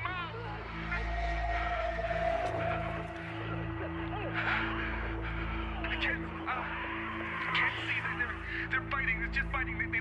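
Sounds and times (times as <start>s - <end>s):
low droning film score: 0.0s - 10.0s.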